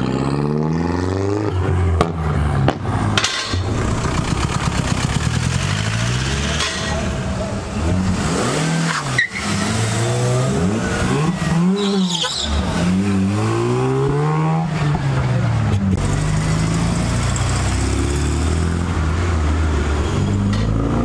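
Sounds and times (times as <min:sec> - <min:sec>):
car engines revving: 0:00.0 - 0:21.0.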